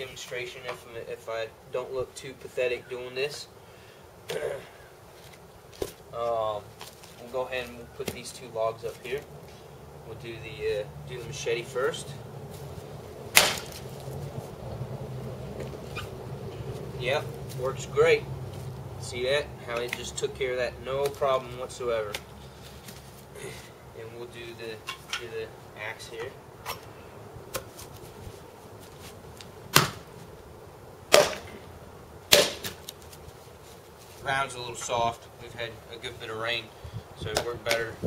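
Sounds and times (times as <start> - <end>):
machete chopping into log: 13.3 - 13.8, 29.7 - 30.1, 31.1 - 31.6, 32.3 - 32.9.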